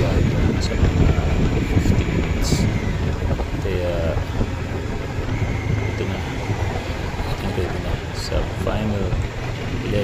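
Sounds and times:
motorcycle engine and road rumble: 0.0s - 10.0s
wind noise on microphone: 0.0s - 10.0s.

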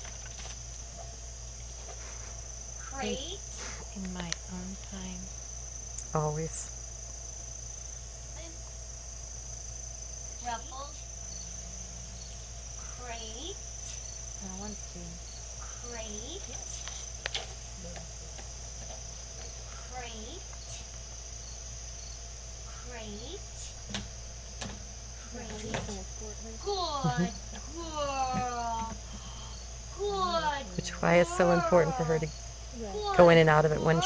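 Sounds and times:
crickets chirring: 0.0s - 34.0s
low steady hum: 0.0s - 34.0s.

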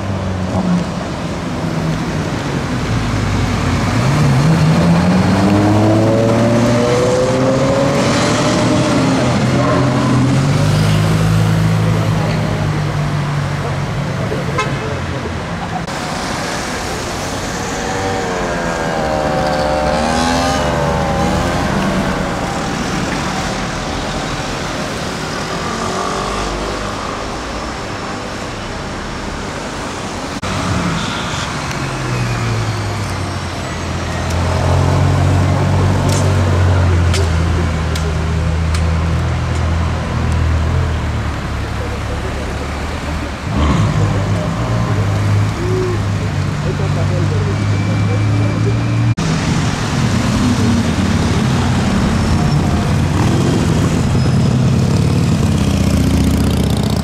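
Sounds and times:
city traffic: 0.0s - 57.0s
car engine accelerating hard: 3.2s - 14.0s, 15.8s - 28.5s.

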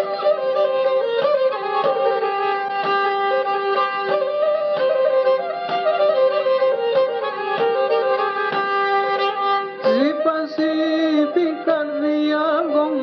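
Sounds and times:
bowed lyra melody: 0.0s - 13.0s.

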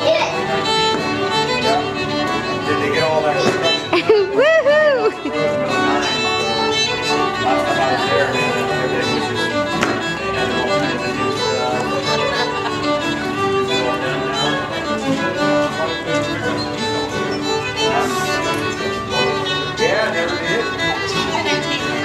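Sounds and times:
fiddle playing a tune: 0.0s - 22.0s
small acoustic band: 0.0s - 22.0s.

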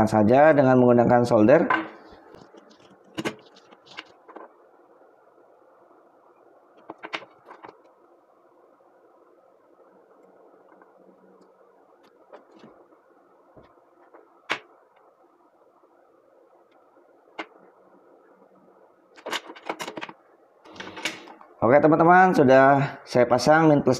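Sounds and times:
faint background hum: 0.0s - 23.9s.

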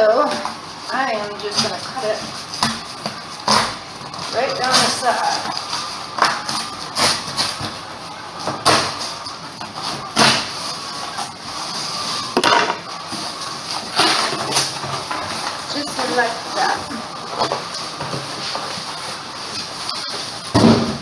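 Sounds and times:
cardboard box rustling and scraping: 0.1s - 21.0s.

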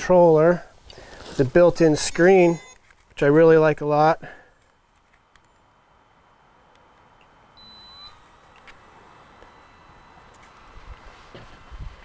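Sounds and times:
high-pitched electronic beep: 2.0s - 2.8s.

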